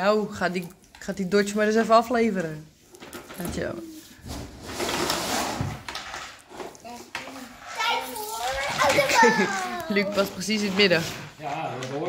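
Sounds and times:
children chattering and calling: 0:06.8 - 0:10.4.

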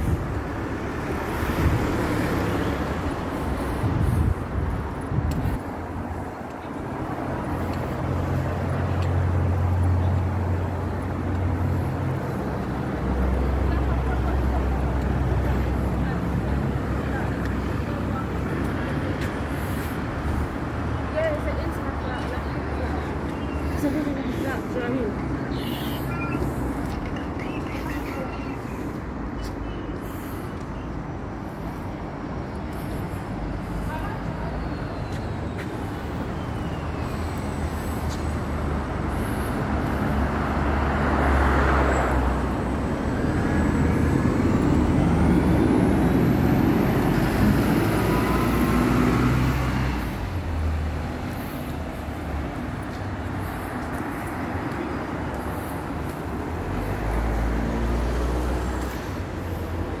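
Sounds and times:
bus passing: 0:00.0 - 1:00.0
road traffic: 0:00.0 - 1:00.0.

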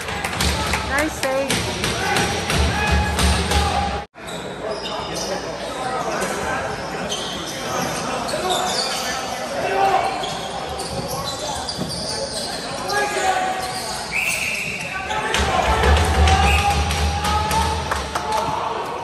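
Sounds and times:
sneakers squeaking: 0:04.2 - 0:15.5.

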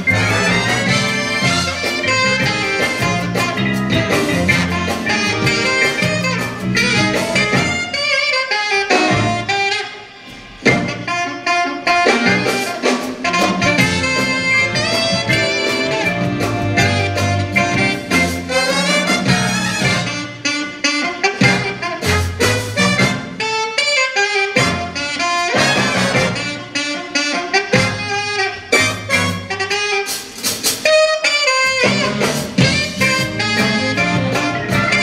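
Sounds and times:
jazz big band playing swing: 0:00.0 - 0:35.0.

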